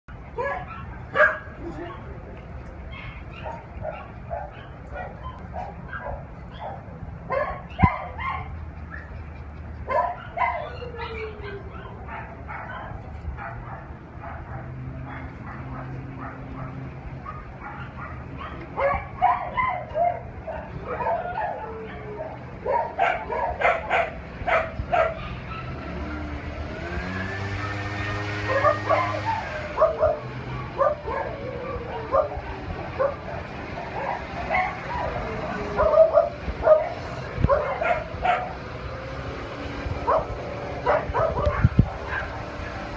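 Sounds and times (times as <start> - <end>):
dogs barking: 0.4 - 2.1, 2.9 - 42.9.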